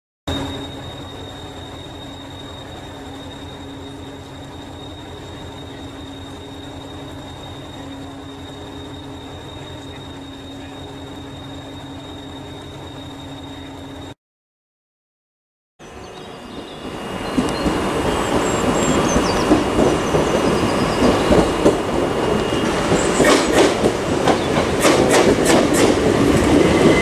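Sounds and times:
high-pitched whine: 0.3s - 14.2s
train idling rumble: 0.3s - 14.2s, 15.8s - 27.0s.

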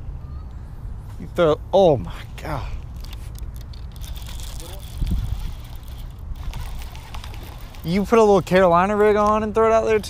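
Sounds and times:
wind noise on microphone: 3.4s - 9.6s.

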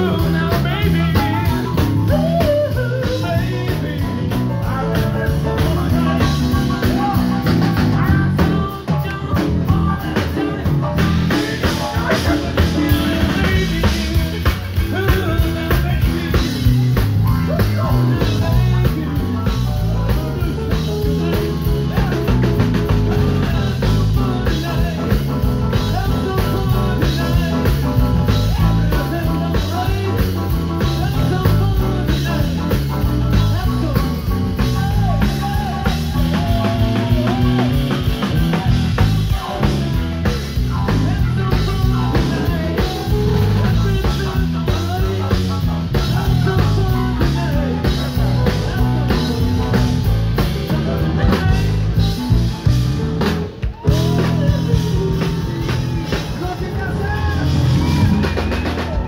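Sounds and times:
live rock band playing: 0.0s - 59.0s
man singing lead vocal: 0.0s - 59.0s.

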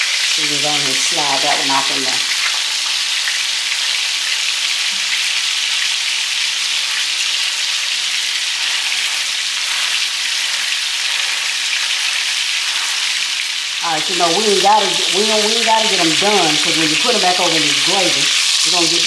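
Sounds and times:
meat patties sizzling in a pan: 0.0s - 19.0s.

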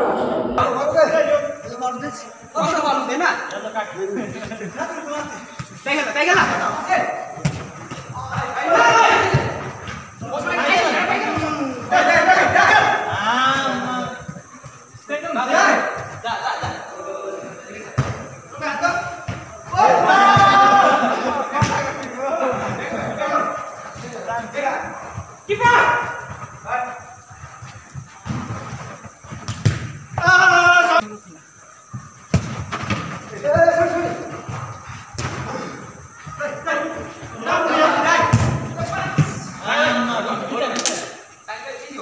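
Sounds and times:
players shouting: 0.0s - 28.9s, 30.0s - 31.3s, 32.9s - 41.1s
ball being kicked: 7.4s - 9.7s, 28.2s - 30.3s, 38.2s - 39.4s.

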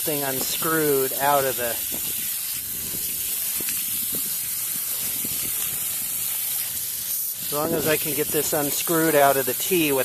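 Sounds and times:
water jet splashing: 0.0s - 10.0s
water spraying with hiss: 0.0s - 10.0s.

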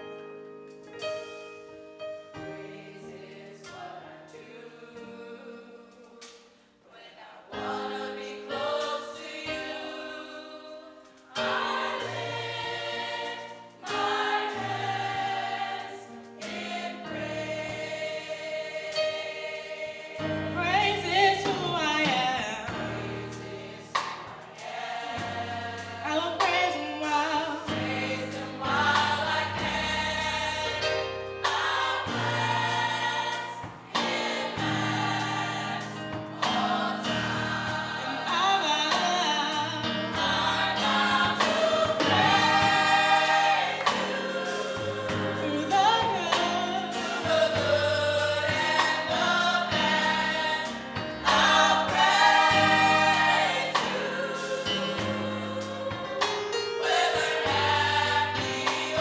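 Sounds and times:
gospel choir singing: 1.1s - 59.0s.

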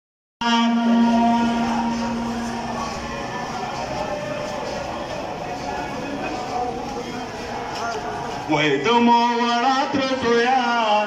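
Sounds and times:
person chanting a lament: 0.4s - 4.8s
murmur of large crowd: 0.4s - 11.0s.

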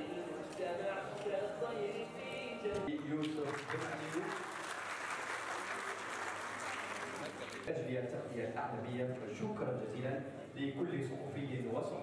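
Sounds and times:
audience applauding: 3.1s - 7.7s.

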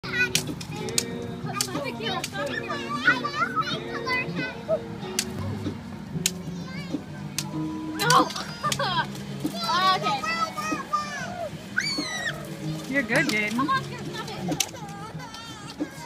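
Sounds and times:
background music with held notes: 0.0s - 16.0s
children calling and chattering: 0.0s - 16.0s.

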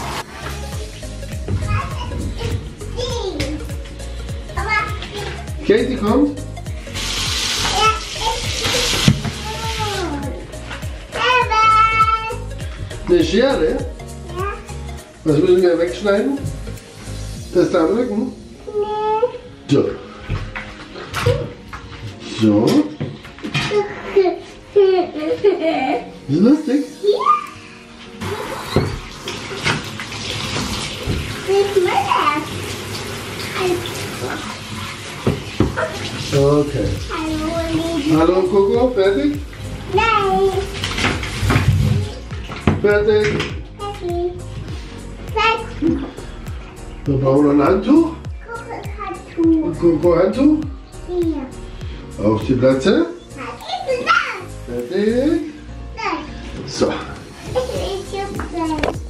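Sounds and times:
shower spraying water: 0.0s - 18.8s, 26.2s - 55.5s, 56.6s - 59.0s
background music with steady beat: 0.0s - 59.0s.

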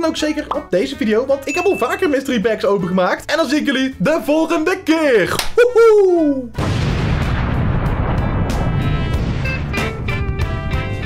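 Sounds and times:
explosion with low rumble: 6.6s - 10.6s
music with steady beat: 8.5s - 11.0s.

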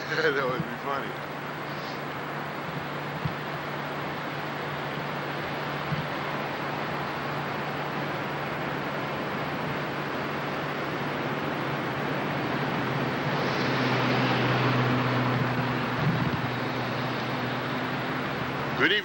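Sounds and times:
outdoor rushing noise: 0.0s - 19.0s.

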